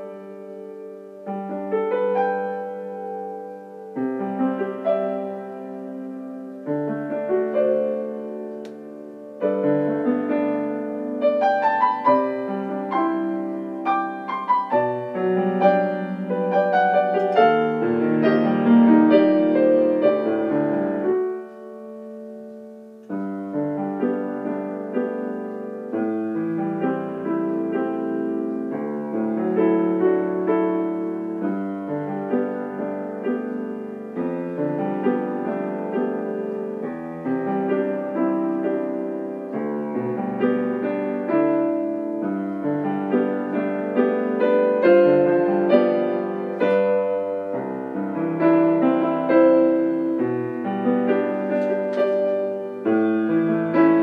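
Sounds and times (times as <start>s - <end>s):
piano playing slow hymn: 0.0s - 54.0s.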